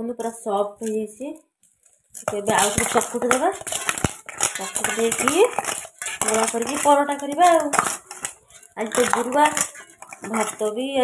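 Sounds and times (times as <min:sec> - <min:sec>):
woman talking: 0:00.0 - 0:01.4, 0:02.3 - 0:03.7, 0:04.6 - 0:07.9, 0:08.8 - 0:11.0
bangles clinking on steel bowl: 0:02.1 - 0:11.0.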